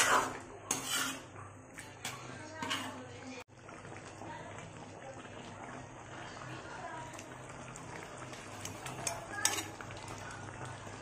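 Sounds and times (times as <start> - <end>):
stew bubbling and crackling: 0.0 - 11.0.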